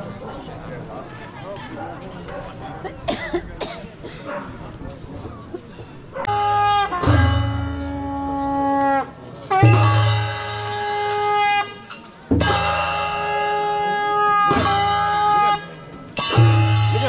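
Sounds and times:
percussion stroke: 0:06.3 - 0:13.8, 0:14.4 - 0:17.0
wind instrument long held notes: 0:06.3 - 0:17.0.

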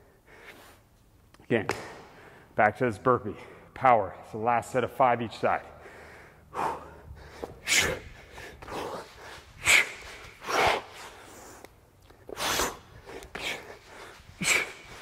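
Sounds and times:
man breathing hard: 0:01.8 - 0:02.6, 0:05.8 - 0:15.0.

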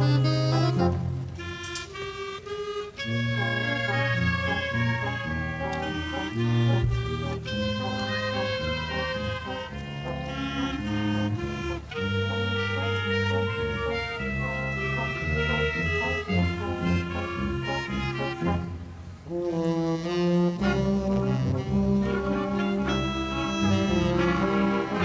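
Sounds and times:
wind band playing held chords: 0:00.0 - 0:25.0.

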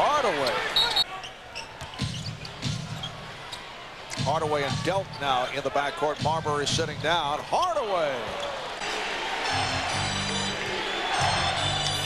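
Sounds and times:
arena crowd noise: 0:00.0 - 0:12.0
music over sound system: 0:09.5 - 0:12.0.

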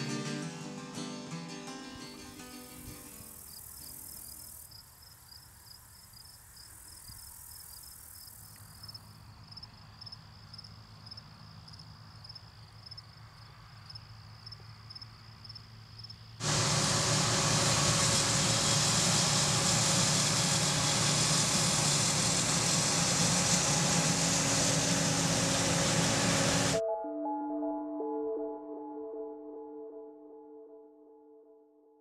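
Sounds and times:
crickets chirping: 0:02.4 - 0:16.4
combine harvester threshing: 0:16.4 - 0:26.8.

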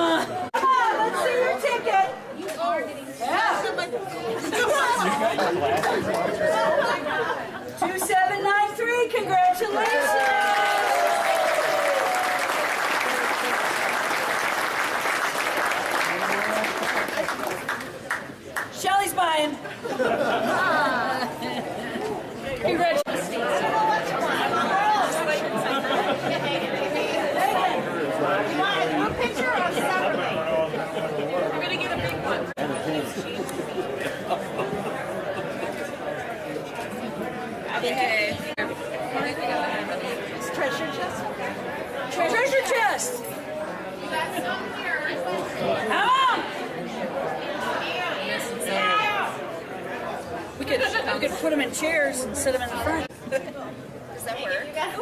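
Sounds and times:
crowd chatter: 0:00.0 - 0:55.0
voices talking in a hall: 0:00.0 - 0:55.0.

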